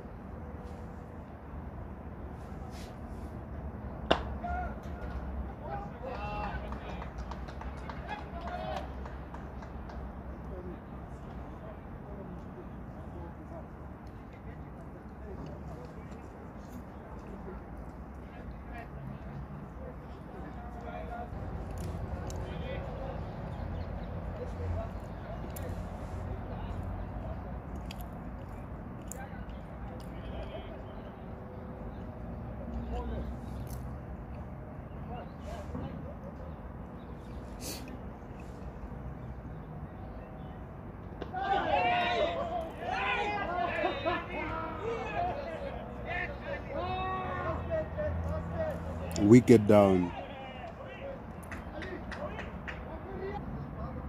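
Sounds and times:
players shouting: 0:04.1 - 0:06.8, 0:41.2 - 0:48.0, 0:49.2 - 0:51.1
faint distant voices: 0:04.4 - 0:54.0.

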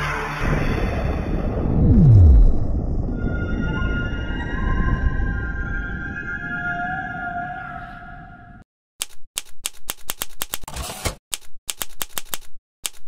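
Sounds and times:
typewriter keystroke clacks: 0:09.0 - 0:13.0.

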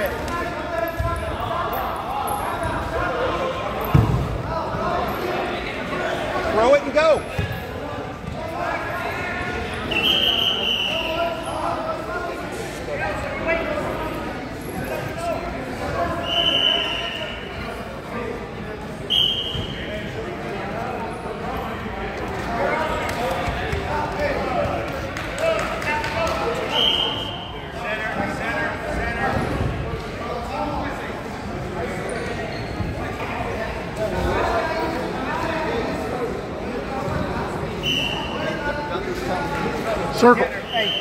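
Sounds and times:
voices chattering in a gym: 0:00.0 - 0:41.0
referee's whistle blasts: 0:09.9 - 0:11.1, 0:16.2 - 0:17.5, 0:19.1 - 0:19.8, 0:37.8 - 0:38.5, 0:40.6 - 0:41.0.

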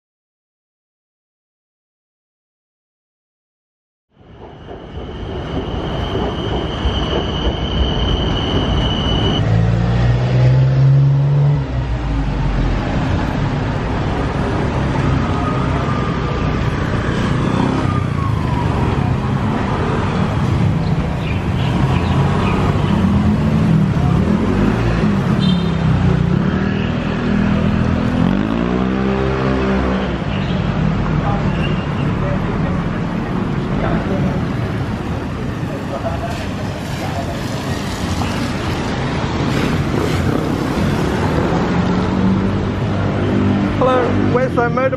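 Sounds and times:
engine revving past: 0:09.4 - 0:13.4, 0:26.0 - 0:30.1
cars and motorbikes passing: 0:09.4 - 0:44.9.

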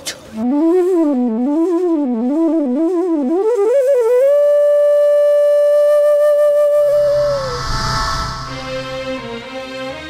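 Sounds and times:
melody with long held note: 0:05.7 - 0:10.0.

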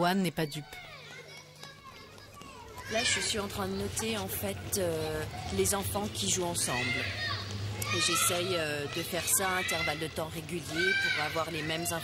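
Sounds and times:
children playing and calling: 0:00.3 - 0:12.0.

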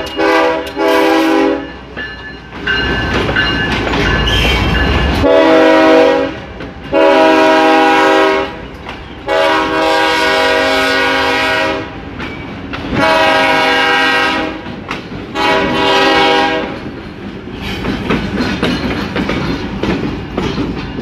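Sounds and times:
locomotive air horn blasts: 0:00.0 - 0:01.7, 0:05.2 - 0:08.6, 0:09.3 - 0:12.0, 0:13.0 - 0:14.7, 0:15.3 - 0:16.8
faint rumble of passing train: 0:00.0 - 0:21.0.

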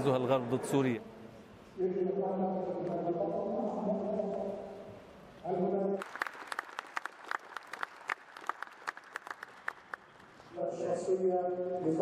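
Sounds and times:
small audience clapping: 0:06.0 - 0:10.4.

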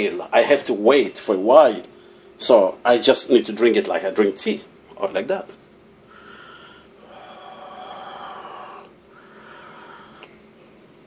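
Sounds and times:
man blowing across hot water: 0:06.1 - 0:10.3.

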